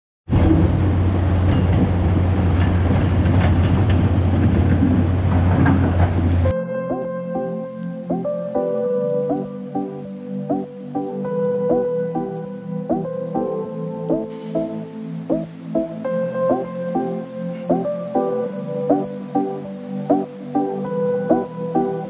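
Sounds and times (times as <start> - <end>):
river rushing over boulders: 0.3 - 6.5, 14.3 - 22.0
background music: 5.6 - 22.0.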